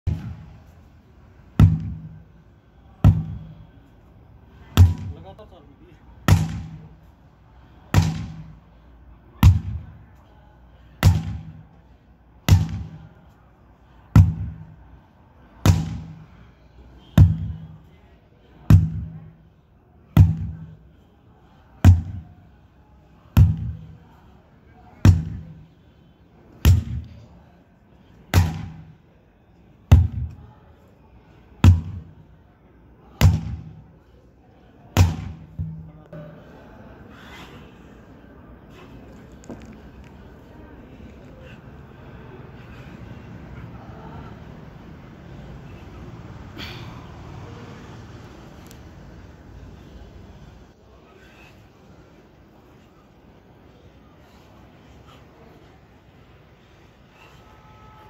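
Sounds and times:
sledgehammer thudding on rubber tyre: 0.1s - 0.5s, 1.5s - 2.2s, 3.0s - 3.6s, 4.7s - 5.4s, 6.2s - 7.0s, 7.9s - 8.6s, 9.4s - 10.0s, 11.0s - 11.6s, 12.4s - 13.1s, 14.1s - 14.7s, 15.6s - 16.3s, 17.1s - 17.8s, 18.6s - 19.4s, 20.1s - 20.8s, 21.8s - 22.3s, 23.4s - 24.0s, 25.0s - 25.7s, 26.6s - 27.2s, 28.3s - 29.0s, 29.9s - 30.4s, 31.6s - 32.2s, 33.1s - 33.9s, 35.0s - 36.0s.

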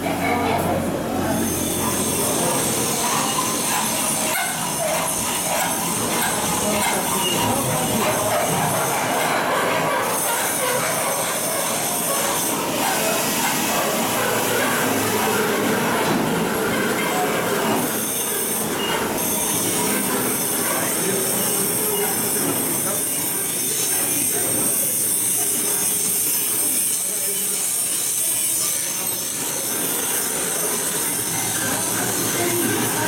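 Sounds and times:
faint voices: 0.0s - 33.0s.

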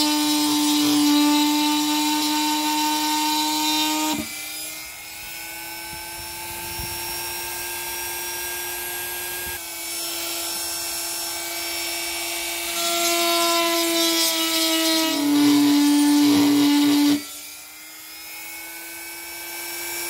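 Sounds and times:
rotary tool grinding metal: 0.0s - 20.0s.

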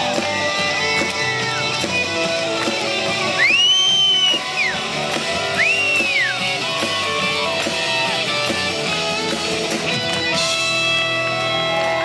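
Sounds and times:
live rock band playing: 0.0s - 12.0s
high whistles: 3.4s - 4.8s, 5.6s - 6.4s.

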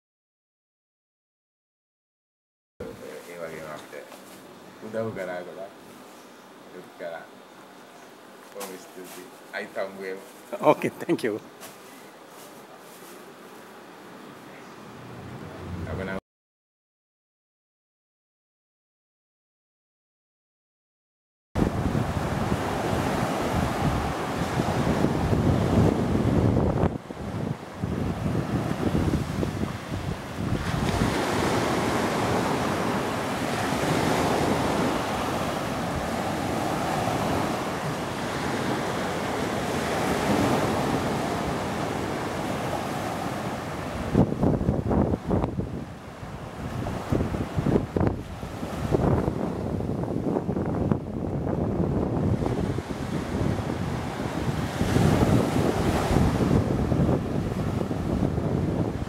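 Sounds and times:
surf washing onto beach: 21.6s - 59.0s
wind buffeting microphone: 21.6s - 59.0s.

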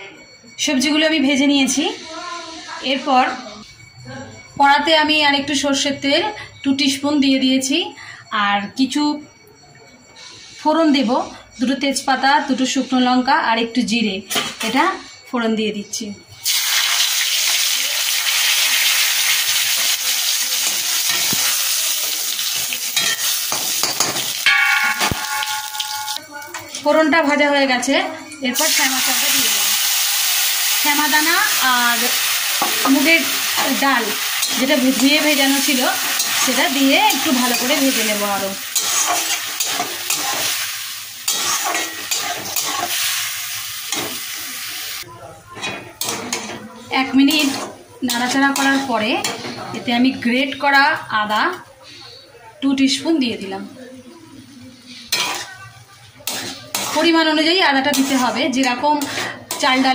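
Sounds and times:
spices sizzling in hot oil: 16.4s - 26.9s, 28.6s - 45.0s, 54.4s - 59.9s
spatula scraping metal pan: 32.6s - 40.6s, 41.2s - 43.1s, 54.9s - 55.6s, 56.2s - 59.9s.

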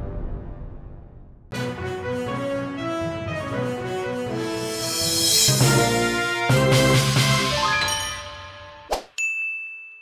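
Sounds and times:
music track: 1.5s - 8.9s.

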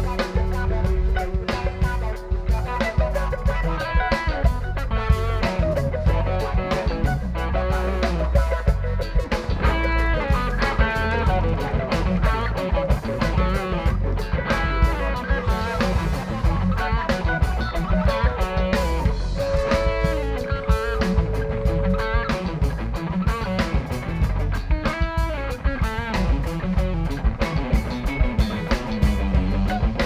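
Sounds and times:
bass guitar: 0.0s - 30.0s
drum kit: 0.0s - 30.0s
electric guitars: 0.0s - 30.0s
keyboards: 0.0s - 30.0s.

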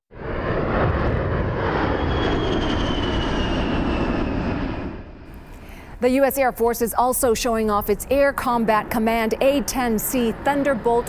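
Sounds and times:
jet roar with high whine: 0.1s - 11.0s.

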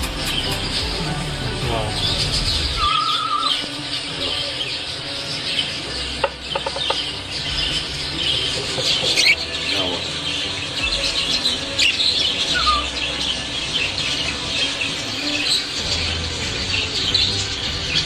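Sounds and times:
budgerigars chattering and warbling: 0.0s - 18.0s
sharp bird calls: 1.9s - 18.0s.

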